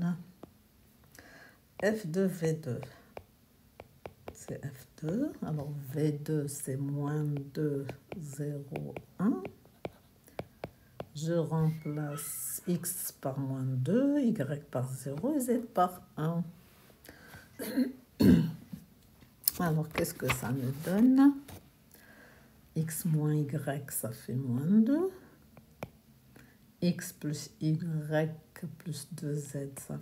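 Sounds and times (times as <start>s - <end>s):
stylus tapping on glass screen: 2.8s - 5.3s, 7.4s - 11.2s
man clearing his throat: 17.7s - 18.6s.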